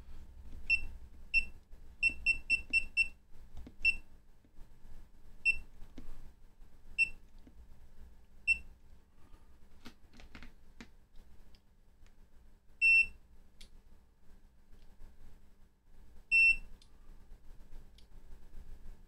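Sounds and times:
meter key-press beeps: 0.7 - 3.1, 12.8 - 13.1, 16.3 - 16.6.

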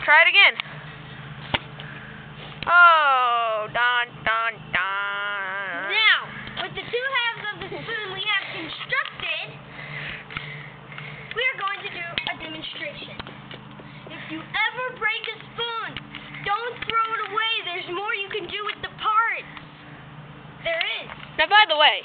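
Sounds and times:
steady low hum: 0.0 - 22.0
child talking: 5.6 - 9.6, 11.3 - 13.2, 14.1 - 19.5, 20.6 - 21.1.

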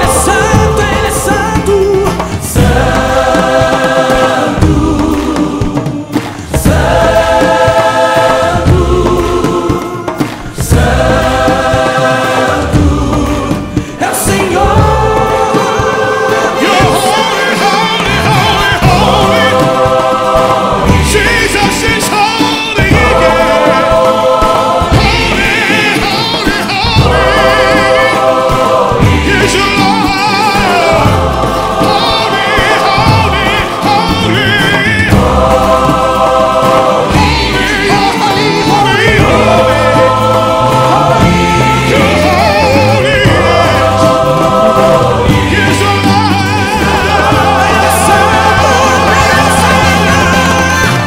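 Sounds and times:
band with bass: 0.0 - 51.0
choir singing gospel music: 0.0 - 51.0.

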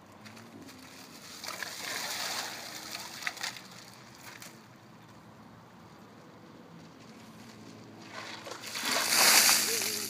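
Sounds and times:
water splashing over person: 8.1 - 10.0.

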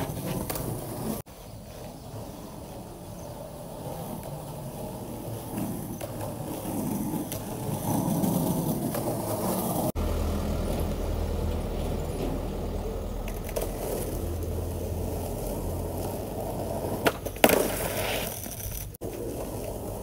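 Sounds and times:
skateboard wheels rolling on asphalt: 0.0 - 20.0
deeper steady rumble: 10.0 - 16.6.

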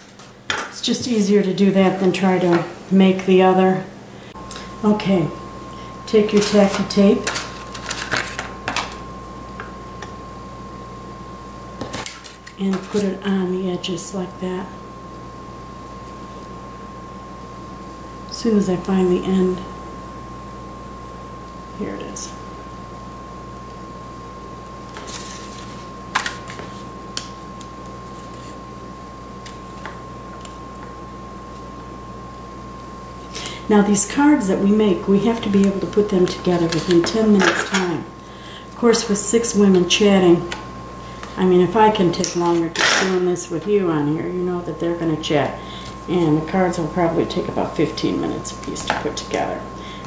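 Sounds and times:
steady background hum: 0.0 - 50.0
thin high whine: 0.0 - 50.0.

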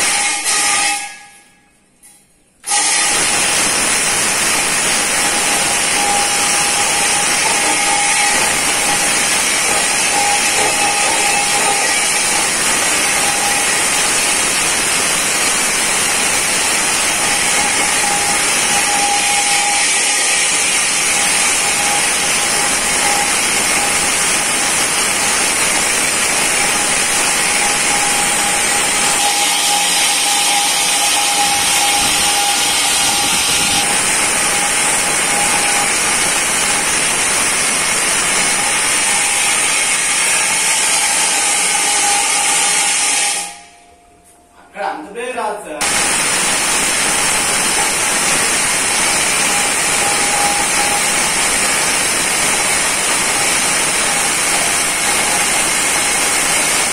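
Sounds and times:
electric drill boring through wall: 2.6 - 43.7, 45.8 - 56.9.

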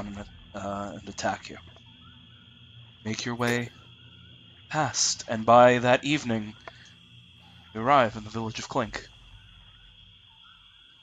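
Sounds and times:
faint chirps: 0.0 - 11.0
high-pitched whine: 0.0 - 11.0.

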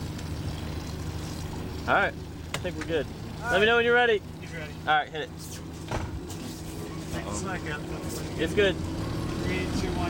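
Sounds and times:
motorboat engine idling: 0.0 - 10.0.

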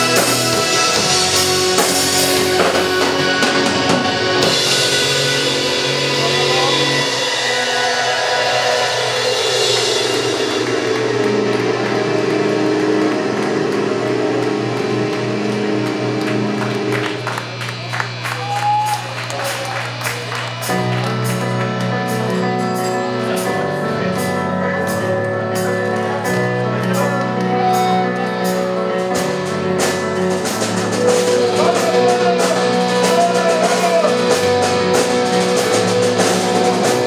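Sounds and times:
live rock band playing: 0.0 - 37.0.

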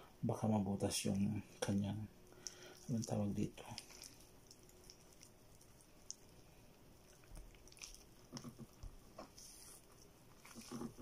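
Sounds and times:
wet squishing of raw chicken: 2.3 - 11.0.

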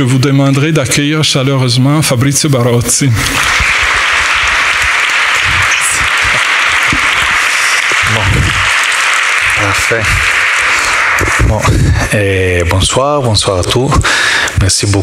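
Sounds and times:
man's voice: 0.0 - 3.4, 7.5 - 8.6, 9.5 - 10.3, 11.2 - 15.0
audience applauding: 3.2 - 12.4.

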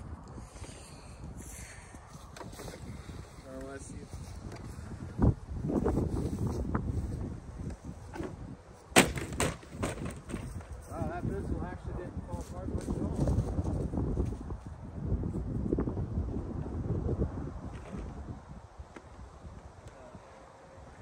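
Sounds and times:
wind rumble on microphone: 0.0 - 21.0
plastic vacuum cleaner smashing: 9.0 - 10.2
vacuum body crashing on ground: 9.0 - 10.4.

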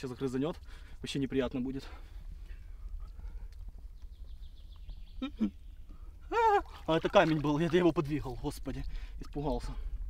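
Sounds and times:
songbird trill: 2.4 - 6.7
man's startled cry: 6.3 - 6.7
steady low rumble: 7.4 - 10.0.

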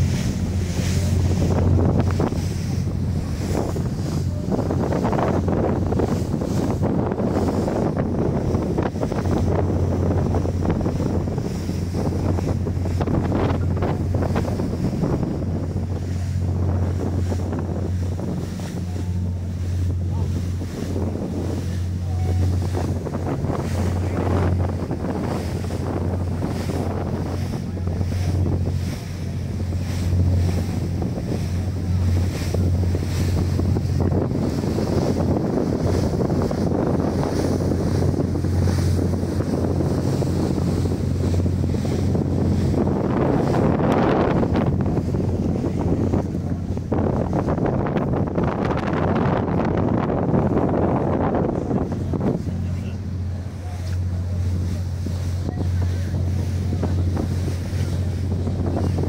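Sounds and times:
boat engine hum: 0.0 - 59.0
rushing water: 0.0 - 59.0
wind buffeting microphone: 0.0 - 59.0.

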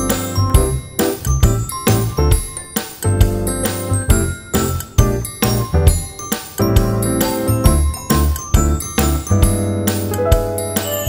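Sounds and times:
tinkly bell-like music with beat: 0.0 - 11.0.

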